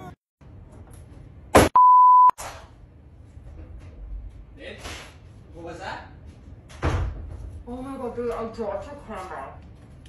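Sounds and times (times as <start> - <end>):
high electronic beep: 1.8 - 2.4.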